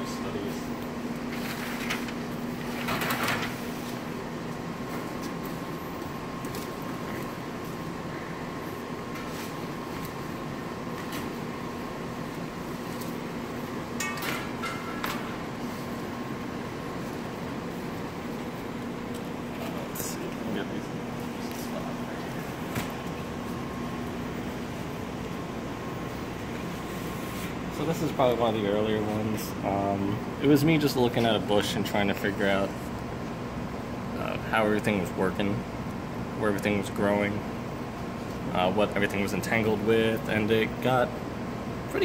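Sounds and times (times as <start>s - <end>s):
steady room hum: 0.0s - 42.0s.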